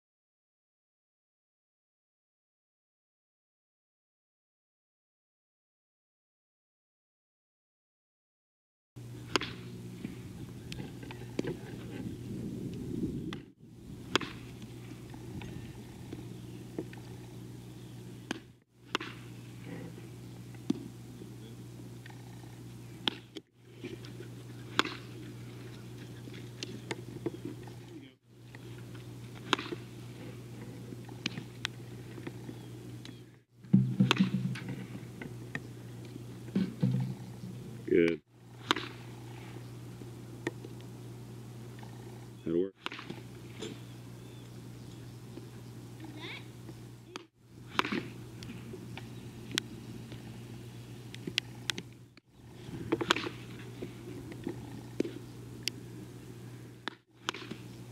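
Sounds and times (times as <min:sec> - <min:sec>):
steady low hum: 0:09.0 - 0:57.9
bat hitting ball: 0:09.3 - 0:09.7, 0:14.1 - 0:14.6, 0:18.3 - 0:19.3, 0:23.9 - 0:25.3, 0:29.4 - 0:29.9, 0:33.7 - 0:35.0, 0:36.6 - 0:37.2, 0:38.6 - 0:39.1, 0:42.8 - 0:43.8, 0:47.1 - 0:48.6, 0:52.9 - 0:53.6, 0:56.8 - 0:57.6
ball smacking into glove: 0:33.8 - 0:34.8, 0:47.7 - 0:48.2.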